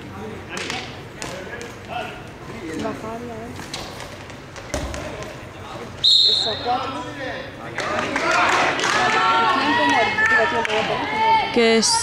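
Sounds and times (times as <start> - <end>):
ball thudding along court: 3.6 - 5.4
referee whistle blast: 6.0 - 6.7.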